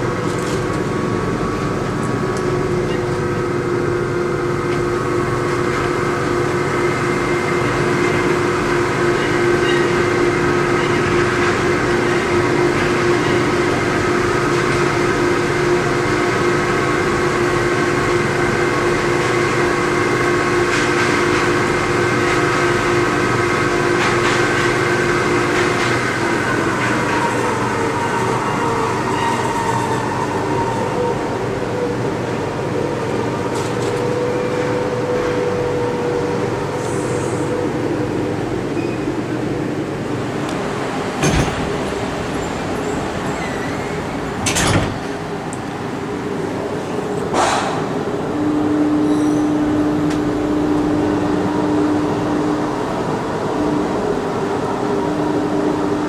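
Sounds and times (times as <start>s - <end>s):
train running noise: 0.0s - 56.0s
train whine: 0.0s - 56.0s.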